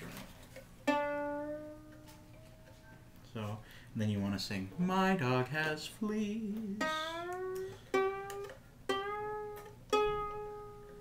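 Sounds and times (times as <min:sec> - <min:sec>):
ukulele string plucked and ringing: 0:00.8 - 0:02.4, 0:06.8 - 0:11.0.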